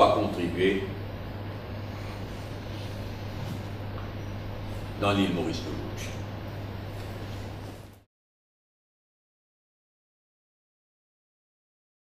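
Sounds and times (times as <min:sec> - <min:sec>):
steady low hum: 0:00.0 - 0:08.1.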